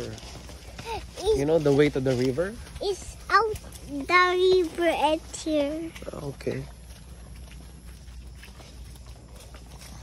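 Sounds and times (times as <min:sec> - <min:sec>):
horse hooves on grass: 0:00.0 - 0:10.0
low steady rumble: 0:02.6 - 0:10.0.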